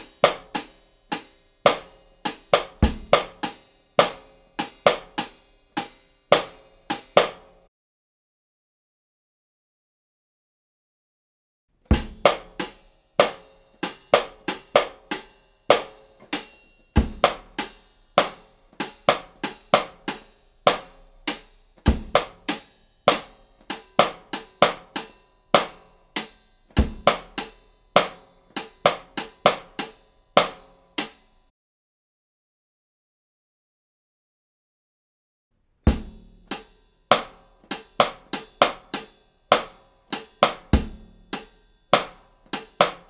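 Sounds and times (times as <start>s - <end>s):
drum kit groove: 0.0s - 7.6s, 11.9s - 31.3s, 35.9s - 43.0s.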